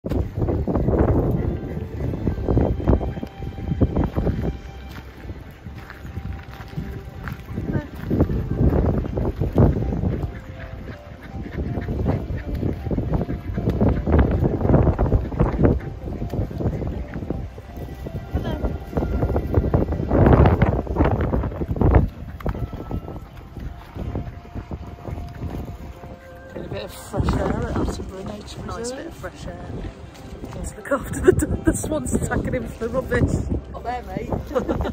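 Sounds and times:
wind rumble on microphone: 0.0 - 34.9
waterfowl calling: 0.1 - 33.4.

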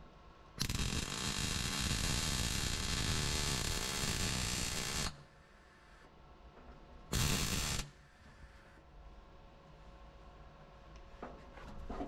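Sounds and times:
low background hum: 0.0 - 12.0
welding arc crackle: 0.6 - 5.2, 7.1 - 8.0.

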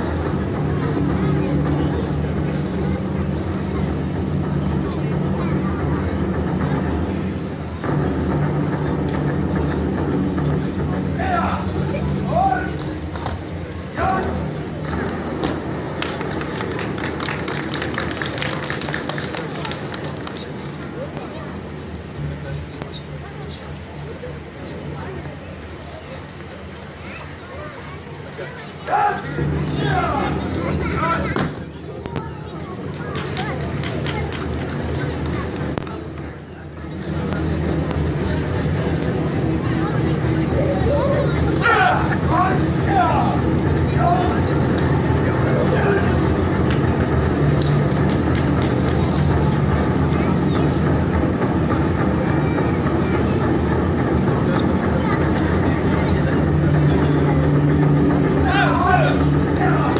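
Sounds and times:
spectators chattering: 0.0 - 59.9
steady low hum: 0.0 - 59.9
loud shout: 40.9 - 43.4.

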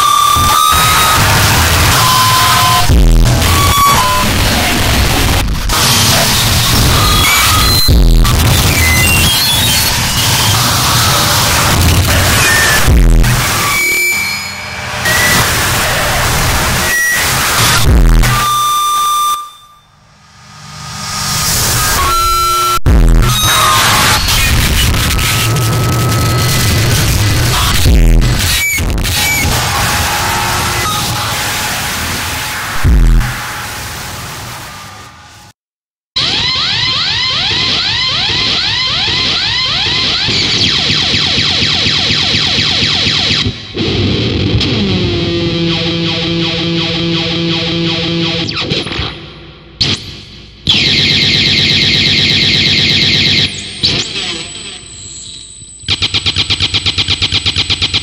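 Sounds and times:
harsh distorted noise: 0.0 - 35.6, 36.2 - 58.0.

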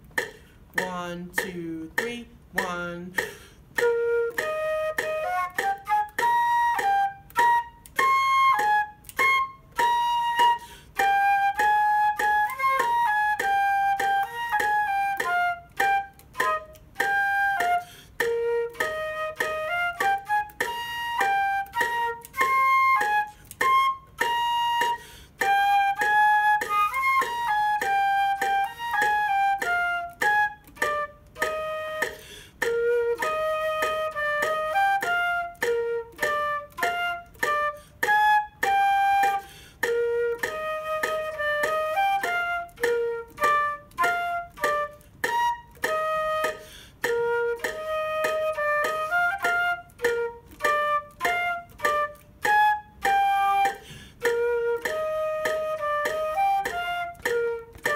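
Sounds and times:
metronome clicking: 0.0 - 57.9
solo flute playing a tune: 3.7 - 57.9.

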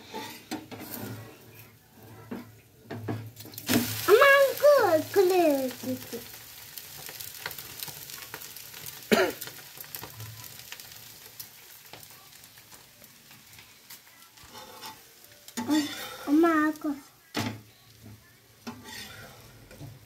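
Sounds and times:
metal spatula scraping pan: 0.0 - 1.6, 14.4 - 16.6, 18.6 - 20.0
batter sizzling on hot pan: 0.0 - 20.0.

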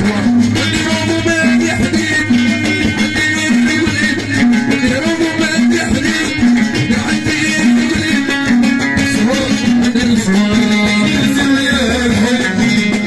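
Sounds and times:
plucked lute melody: 0.0 - 13.0
rhythmic backing: 0.0 - 13.0.

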